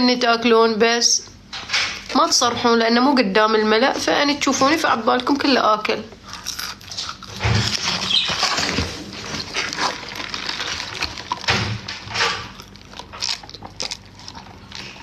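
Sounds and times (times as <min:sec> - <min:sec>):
chewing and wet mouth noises: 0:06.2 - 0:15.0.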